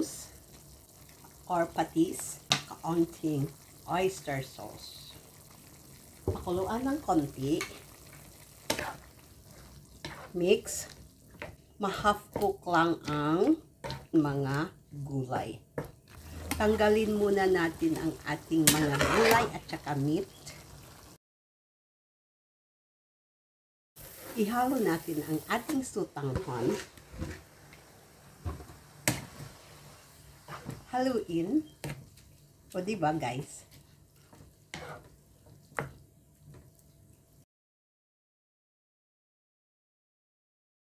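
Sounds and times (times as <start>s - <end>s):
food sizzling in a wok: 0.0s - 14.1s, 16.1s - 21.2s, 24.0s - 36.6s.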